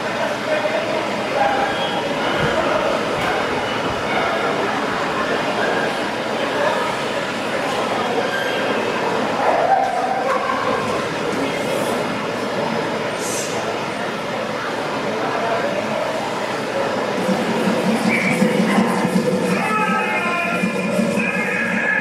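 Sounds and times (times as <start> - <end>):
crowd murmur in indoor hall: 0.0 - 22.0.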